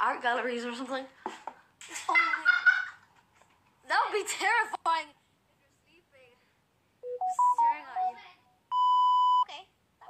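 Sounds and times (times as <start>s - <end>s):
electronic beep: 7.0s - 9.5s.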